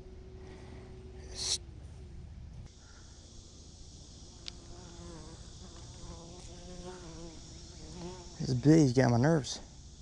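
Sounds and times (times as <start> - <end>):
bee buzzing: 4.5 - 8.5.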